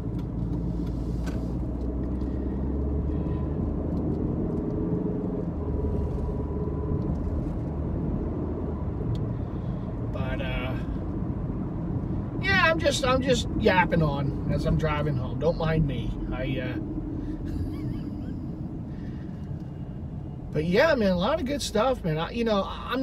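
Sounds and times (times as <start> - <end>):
car road and engine noise: 0.0 - 23.0.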